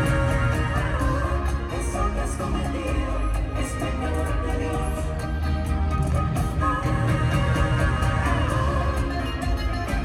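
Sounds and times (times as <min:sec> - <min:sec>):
bass: 0:00.0 - 0:10.0
plucked guitar line: 0:00.0 - 0:10.0
steady percussion beat: 0:00.0 - 0:10.0.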